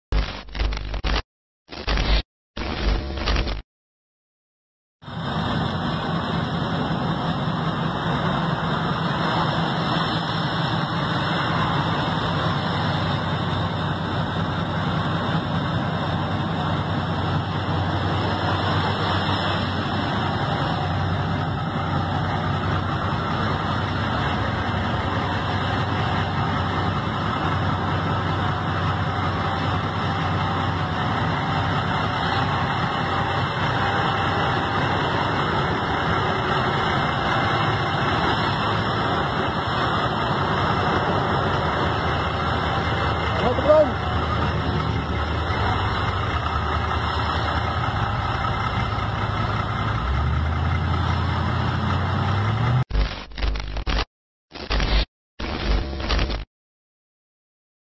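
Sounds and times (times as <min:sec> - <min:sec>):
diesel engine idling: 0:05.0 - 0:52.8.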